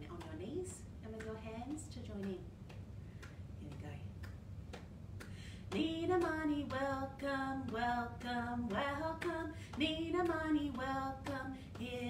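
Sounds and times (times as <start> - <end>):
hand claps keeping beat: 0.0 - 12.0.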